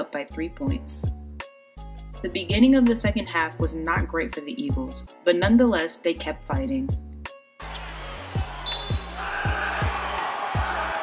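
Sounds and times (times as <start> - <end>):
arena crowd noise: 7.7 - 11.0.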